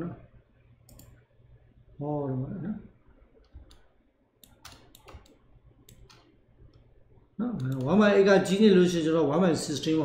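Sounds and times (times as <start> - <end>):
faint low hum: 0.0 - 10.0
computer mouse click: 0.8 - 1.2, 3.4 - 6.9, 7.6 - 8.0
man speaking: 7.4 - 10.0.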